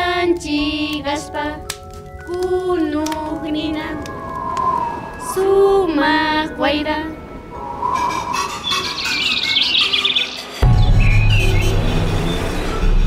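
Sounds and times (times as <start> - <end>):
intro music: 4.0 - 13.0
birds chirping and twittering: 7.1 - 13.0.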